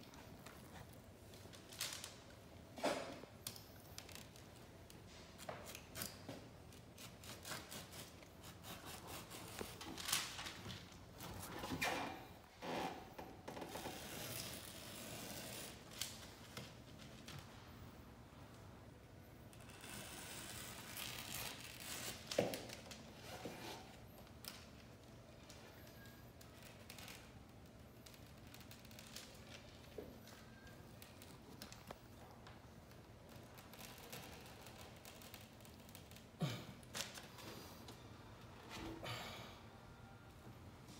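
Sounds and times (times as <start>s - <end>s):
knife cutting wallpaper: 7.0s - 9.8s.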